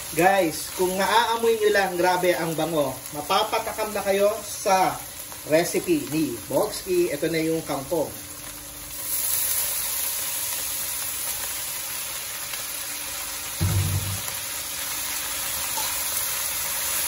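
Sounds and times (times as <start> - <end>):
vegetables sizzling in a wok: 0.0 - 17.0
low thump: 13.6 - 14.3.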